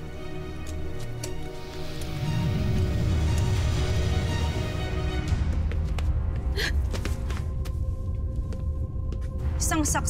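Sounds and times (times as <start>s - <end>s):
low music drone: 0.0s - 10.0s.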